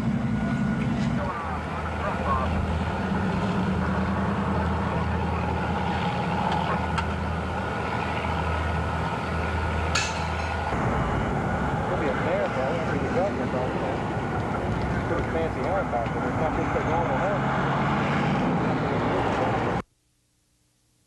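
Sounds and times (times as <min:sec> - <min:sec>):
vehicle engine droning: 0:00.0 - 0:19.8.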